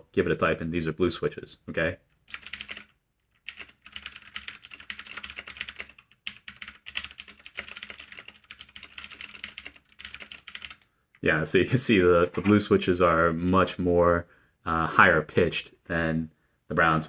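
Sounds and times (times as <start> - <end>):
mechanical keyboard typing: 2.2 - 10.9.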